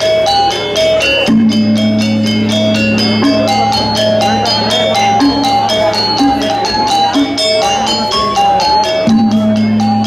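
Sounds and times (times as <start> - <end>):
gamelan ensemble playing: 0.0 - 10.0.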